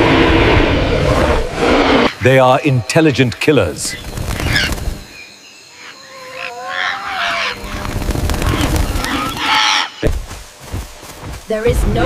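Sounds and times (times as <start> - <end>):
low rumble: 0.0 - 2.2
bird calls: 2.0 - 12.0.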